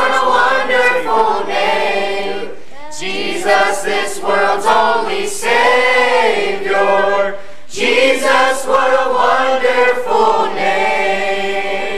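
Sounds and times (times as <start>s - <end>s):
youth choir singing a hymn: 0.0s - 11.9s.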